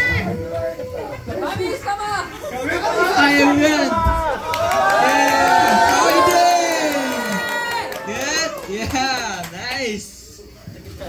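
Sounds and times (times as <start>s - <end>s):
voices talking over each other: 0.0s - 10.2s.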